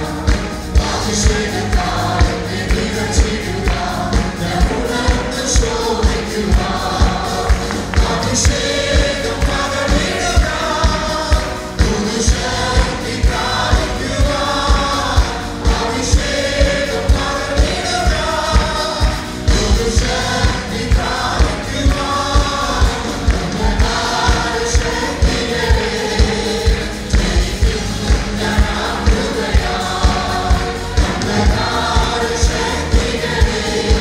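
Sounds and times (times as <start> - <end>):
band with steady drum beat: 0.0 - 34.0
group singing worship song: 0.0 - 34.0.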